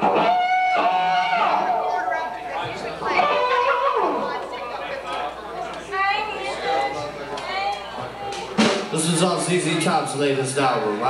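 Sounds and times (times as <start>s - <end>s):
people chattering in a room: 0.0s - 11.0s.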